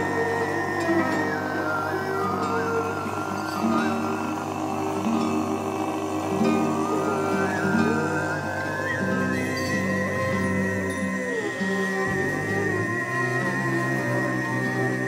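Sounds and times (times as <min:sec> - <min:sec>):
throat singing low drone: 0:00.0 - 0:15.0
whistle-like overtone melody: 0:00.0 - 0:15.0.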